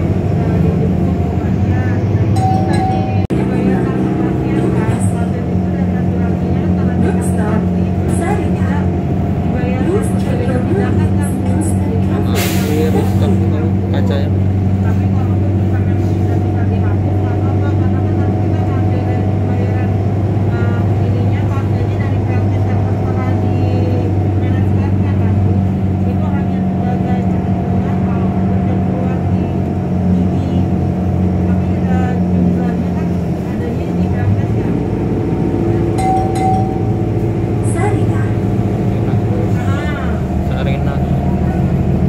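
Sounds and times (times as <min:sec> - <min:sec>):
road noise: 0:00.0 - 0:42.0
vehicle engine drone: 0:00.0 - 0:42.0.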